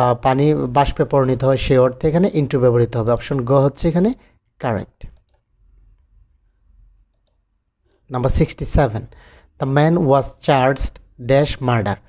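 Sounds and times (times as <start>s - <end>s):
faint computer clicks: 7.1s - 7.4s.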